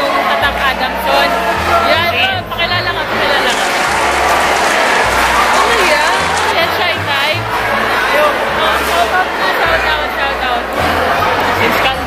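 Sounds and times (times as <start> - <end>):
voices: 0.0 - 12.0
crowd applauding: 2.8 - 10.0.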